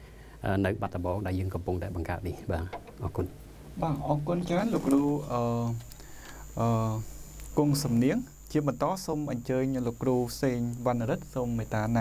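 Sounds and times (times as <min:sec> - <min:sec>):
man speaking: 0:00.4 - 0:05.9, 0:06.6 - 0:12.0.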